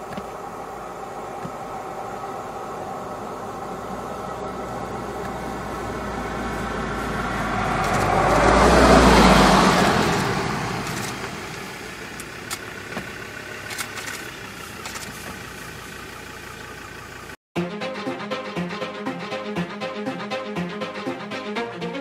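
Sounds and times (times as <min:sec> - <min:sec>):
engine passing by: 0:00.9 - 0:17.4.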